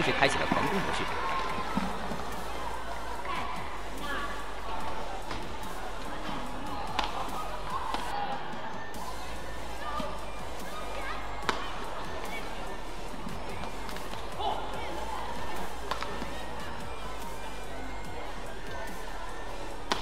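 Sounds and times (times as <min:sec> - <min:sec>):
arena noise: 0:00.0 - 0:20.0
background music: 0:00.0 - 0:20.0
rackets hitting shuttlecock: 0:06.9 - 0:07.2, 0:11.5 - 0:11.7, 0:15.9 - 0:16.3.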